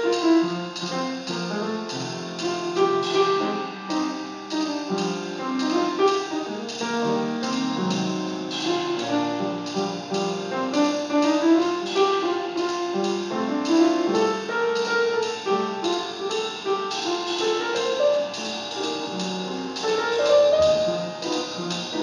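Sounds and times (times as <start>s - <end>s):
cymbal strikes: 0.0s - 22.0s
drum kit: 0.0s - 22.0s
jazz piano playing: 0.0s - 22.0s.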